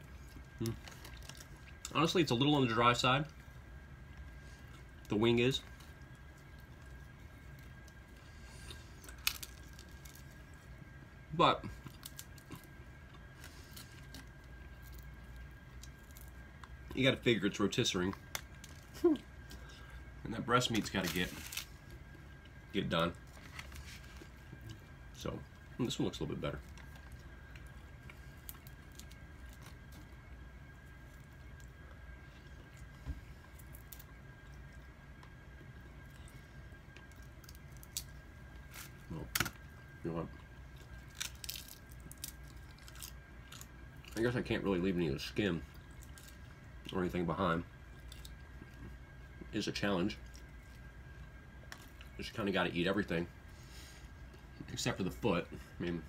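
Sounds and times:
faint steady hum: 0.0 - 56.0.

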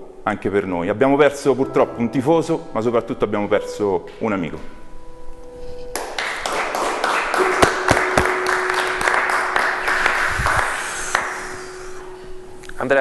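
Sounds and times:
many hands clapping: 5.9 - 11.9.

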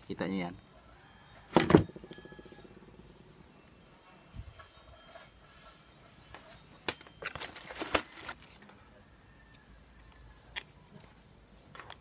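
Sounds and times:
faint bird chirps: 0.1 - 7.5.

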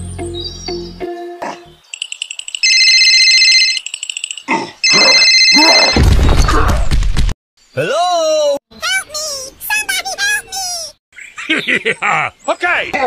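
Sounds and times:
high electronic ringing tone: 1.9 - 6.0.

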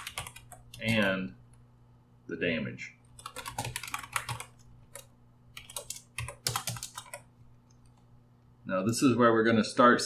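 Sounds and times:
typing on keyboard: 0.0 - 1.1, 3.1 - 8.0.

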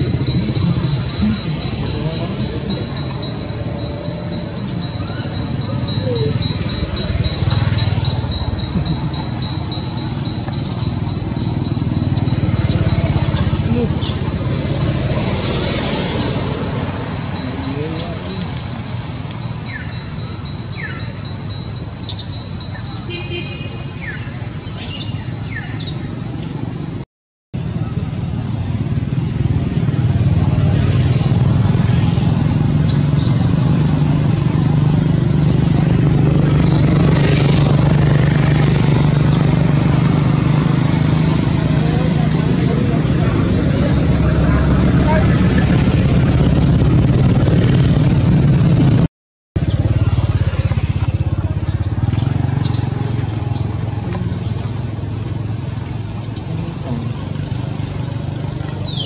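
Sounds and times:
people's voices: 0.0 - 21.5, 39.0 - 46.6, 52.6 - 59.0
low engine-like drone: 0.0 - 22.9, 27.8 - 59.0.

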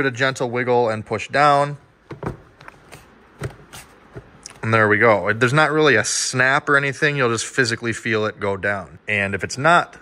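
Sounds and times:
plastic airbox knocking and rubbing: 2.1 - 4.4.

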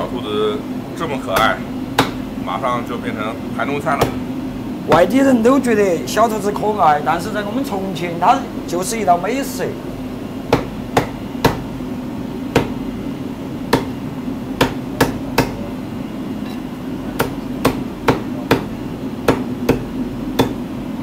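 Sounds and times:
steady low hum: 0.0 - 21.0
cleaver chopping on wooden block: 1.3 - 2.2, 4.0 - 4.2, 10.5 - 11.7, 12.5 - 12.8, 13.7 - 14.0, 14.6 - 15.6, 17.2 - 20.6.

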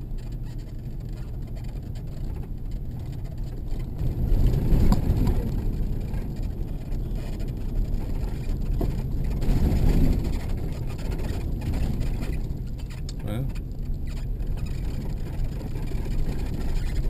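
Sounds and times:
car tyres and engine rumble: 0.0 - 17.0.

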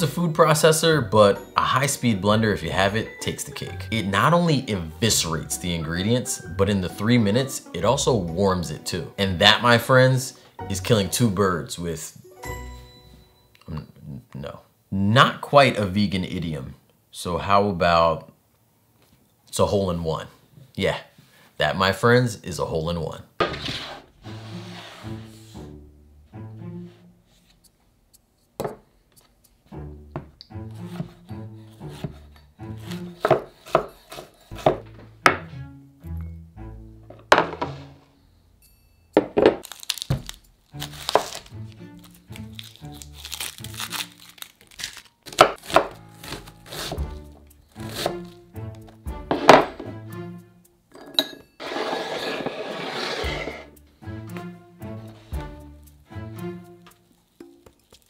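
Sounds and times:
knife on wooden cutting board: 31.8 - 34.8, 45.4 - 47.2, 47.8 - 48.4, 51.6 - 53.7
background music with bass: 34.6 - 38.2, 45.8 - 50.8, 53.3 - 56.9
herbs rustling: 39.6 - 46.5, 57.0 - 58.0.

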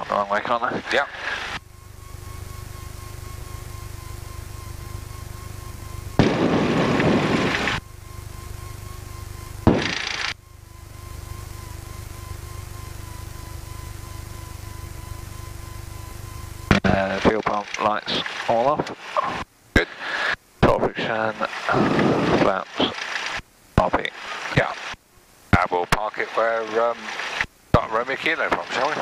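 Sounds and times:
aircraft engine droning: 0.0 - 20.4
faint steady whine: 0.0 - 29.0
loud noisy bursts: 6.0 - 9.0, 9.6 - 10.4.

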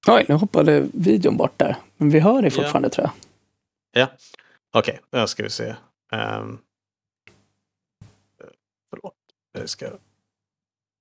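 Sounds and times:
person speaking: 0.0 - 3.2.

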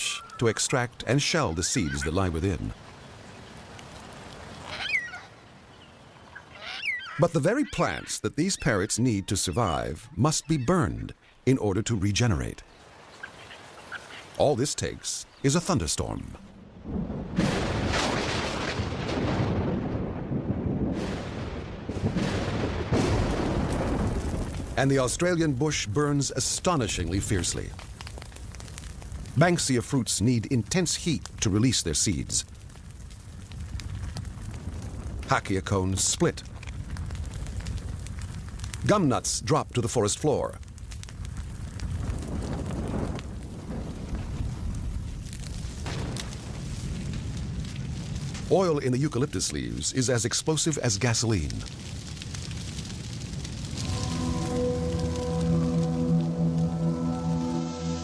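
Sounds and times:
thunder rumbling and cracking: 16.3 - 25.6, 32.0 - 38.9, 40.6 - 49.8, 51.3 - 58.0.

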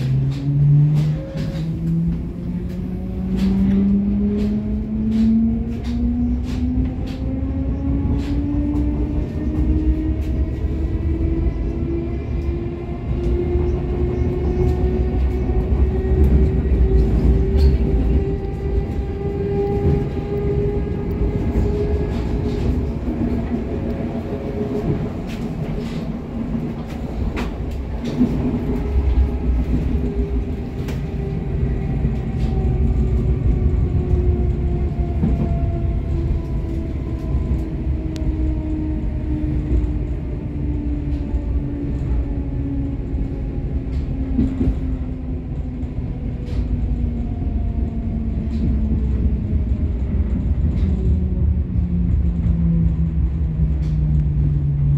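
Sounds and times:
train cabin low rumble: 0.0 - 54.9.

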